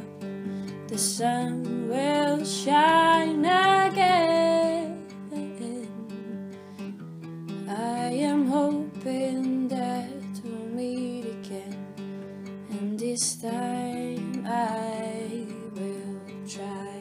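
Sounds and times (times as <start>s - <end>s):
person singing: 0.0s - 6.7s, 7.7s - 11.8s, 12.7s - 17.0s
acoustic guitar strumming: 0.0s - 17.0s.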